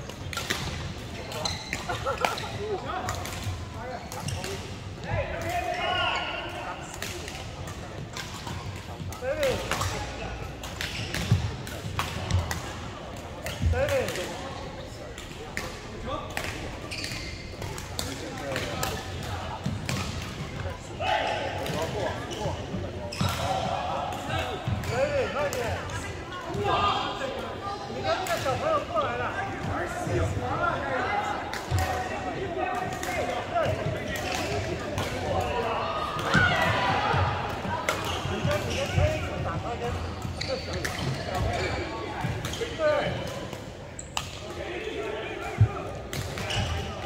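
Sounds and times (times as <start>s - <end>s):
people talking: 1.1s - 47.0s.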